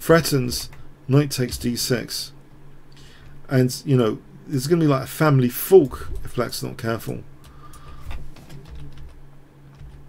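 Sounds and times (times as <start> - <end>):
steady low hum: 0.0 - 10.0
keyboard and mouse clicks: 7.7 - 10.0.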